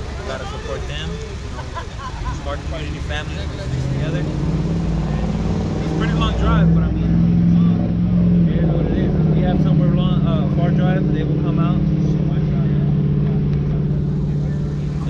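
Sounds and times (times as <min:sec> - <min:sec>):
car engine idling: 0:00.0 - 0:15.0
faint voices talking: 0:00.0 - 0:15.0.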